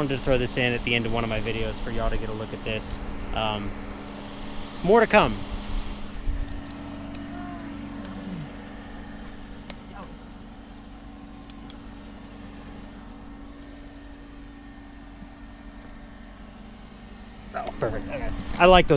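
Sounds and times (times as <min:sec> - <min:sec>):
low mechanical hum: 0:00.0 - 0:18.9
faint voice: 0:07.2 - 0:08.5.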